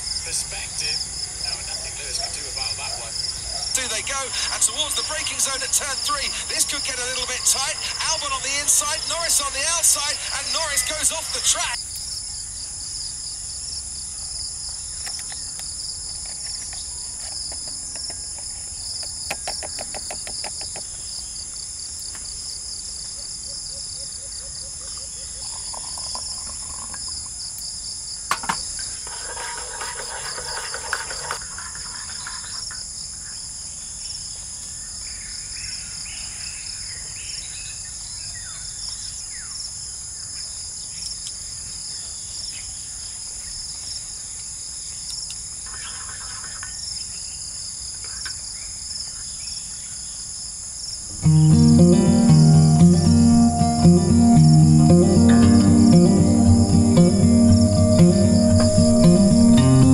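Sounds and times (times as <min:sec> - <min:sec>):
insects chirping: 0:00.0 - 0:59.9
camp cookware clinking: 0:28.3 - 0:32.8.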